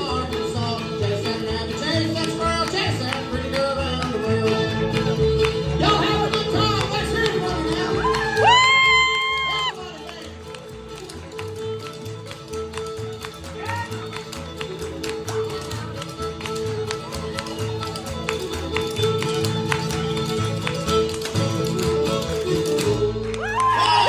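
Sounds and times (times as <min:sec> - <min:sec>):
bluegrass band playing: 0:00.0 - 0:24.0
feet tapping on concrete floor: 0:10.3 - 0:23.7.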